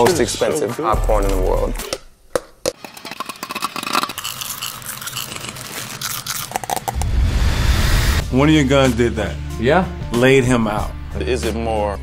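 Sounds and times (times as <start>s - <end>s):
deep rumbling whoosh: 6.9s - 9.5s.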